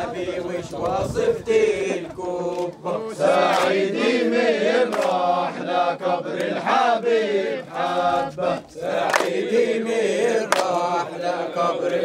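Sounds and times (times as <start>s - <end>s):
men chanting a wedding song: 0.0s - 12.0s
hand claps: 2.5s - 3.8s, 4.9s - 5.2s, 6.4s - 6.6s, 9.0s - 9.4s, 10.4s - 10.9s.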